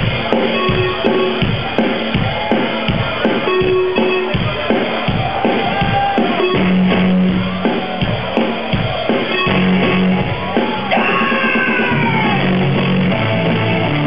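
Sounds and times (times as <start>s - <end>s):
drum kit beat: 0.0s - 14.0s
rock band playing live: 0.0s - 14.0s.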